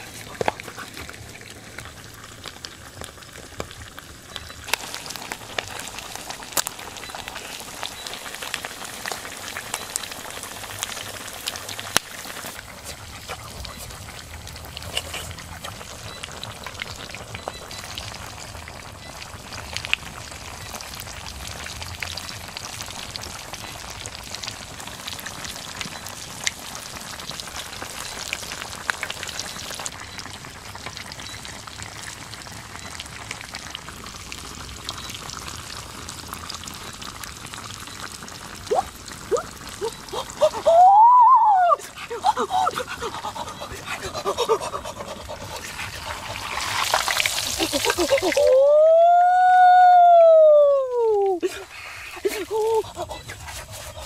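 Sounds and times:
pork sizzling in hot oil: 0.0s - 54.0s
long vocal cry: 38.7s - 43.1s, 47.8s - 53.3s.

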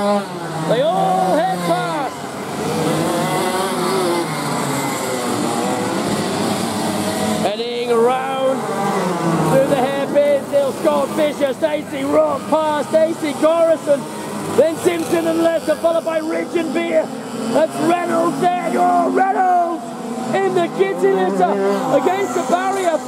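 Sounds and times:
kart engines revving: 0.0s - 23.0s.

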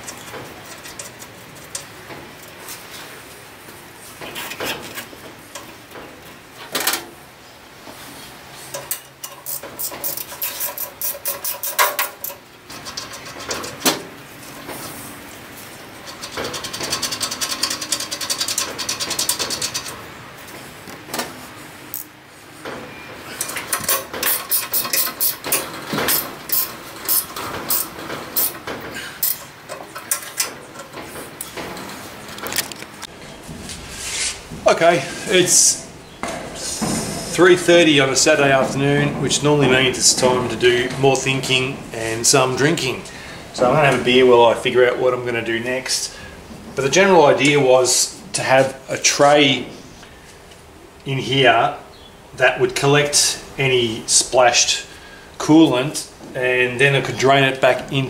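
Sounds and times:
metallic clicks and scrapes: 0.0s - 3.1s, 8.6s - 15.0s, 16.0s - 20.0s, 23.4s - 33.1s
rapid clicking of studs turning: 8.7s - 14.8s, 16.0s - 20.0s, 23.4s - 32.8s.

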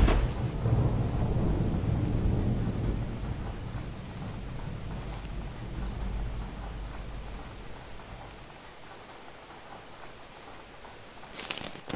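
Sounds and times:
thunder rumbling: 0.0s - 11.2s
steady rain: 0.0s - 11.9s.

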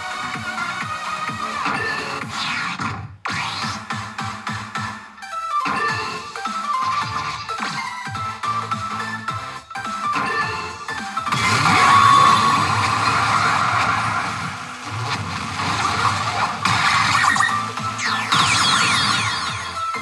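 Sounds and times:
pachinko machine music and effects: 0.6s - 2.6s, 3.3s - 20.0s.

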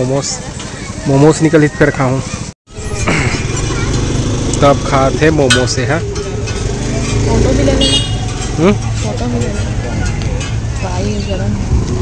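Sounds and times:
low traffic rumble: 0.0s - 12.0s
high horn toot: 7.7s - 8.3s.

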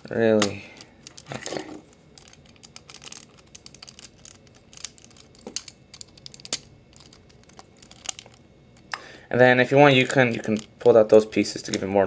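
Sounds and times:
plastic toy parts clicking: 2.2s - 8.4s.

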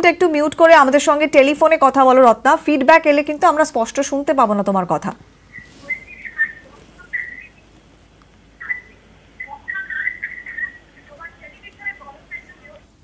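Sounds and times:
chirping blips over telephone line: 5.5s - 11.0s.

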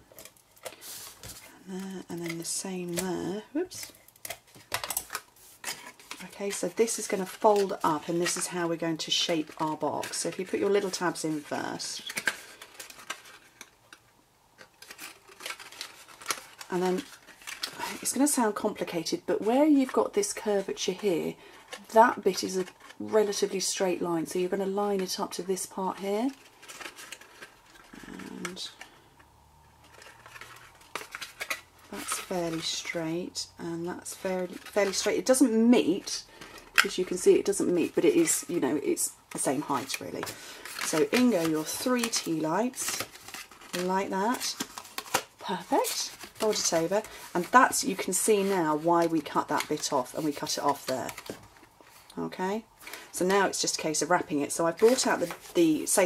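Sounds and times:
cardstock crackling and tapping: 0.0s - 14.0s, 14.6s - 18.8s, 29.8s - 33.1s, 39.3s - 52.1s, 54.7s - 56.0s
card being handled: 39.4s - 52.1s.

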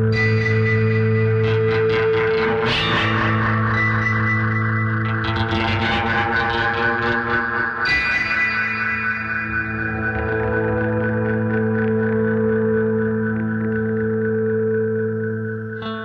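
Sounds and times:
electric guitar drone and picking: 0.0s - 16.0s.

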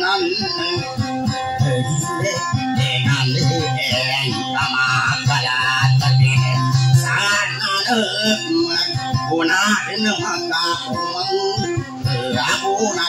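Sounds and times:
man singing: 0.0s - 13.0s
strummed acoustic guitar: 0.0s - 13.0s.

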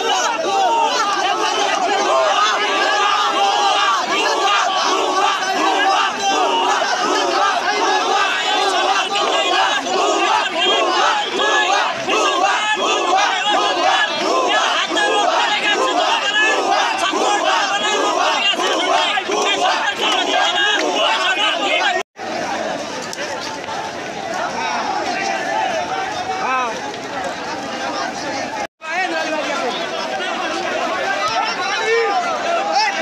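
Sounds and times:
crowd of men shouting: 0.0s - 33.0s.

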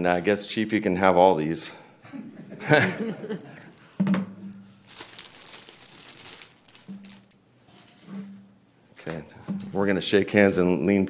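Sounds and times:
crinkling handling noise: 3.8s - 8.1s.

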